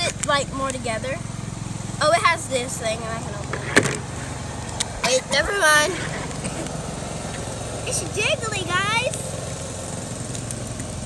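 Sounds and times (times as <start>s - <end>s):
small engine droning: 0.0s - 11.0s.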